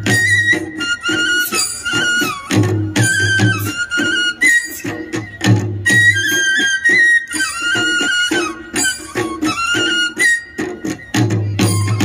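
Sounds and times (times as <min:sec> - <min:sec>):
drum beats: 0:00.0 - 0:12.0
flute melody: 0:00.0 - 0:12.0.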